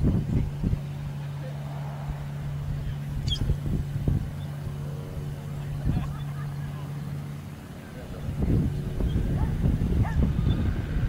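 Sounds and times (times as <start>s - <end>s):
ultralight aircraft engine drone: 0.0s - 11.0s.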